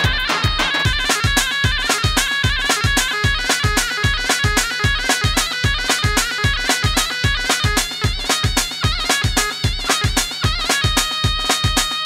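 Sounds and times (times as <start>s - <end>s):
heavy drum beat: 0.0s - 12.0s
reedy bagpipe-like melody: 0.0s - 12.0s.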